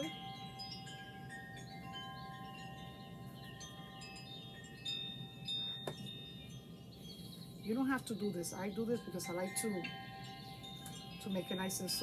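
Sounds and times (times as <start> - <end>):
chimes ringing softly: 0.0 - 12.0.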